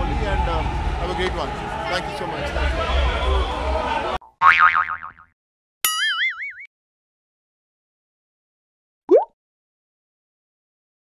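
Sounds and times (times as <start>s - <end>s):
cartoon boing effect: 4.3s - 5.3s, 5.9s - 6.7s.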